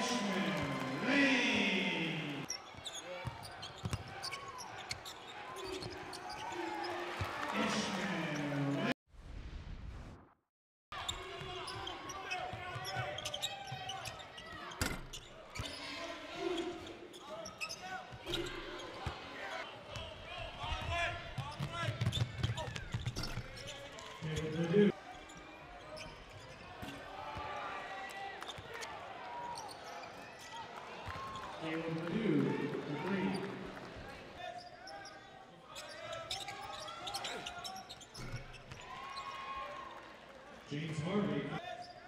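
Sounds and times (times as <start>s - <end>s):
crowd voices: 0.0s - 8.9s.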